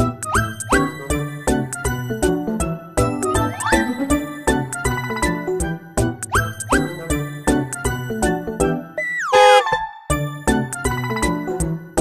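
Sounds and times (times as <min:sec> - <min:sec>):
playful background music: 0:00.0 - 0:12.0.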